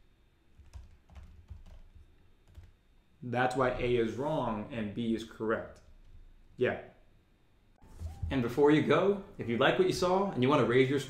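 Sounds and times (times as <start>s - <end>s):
faint keyboard typing: 0.5s - 2.8s.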